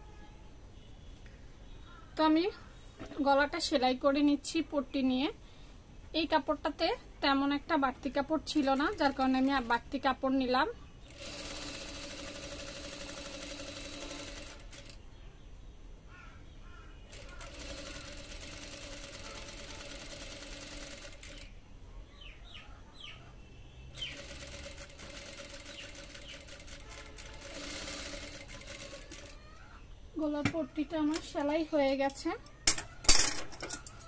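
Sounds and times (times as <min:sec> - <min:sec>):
sewing machine stitching: 0:11.1 - 0:15.0, 0:17.1 - 0:21.5, 0:24.0 - 0:29.4.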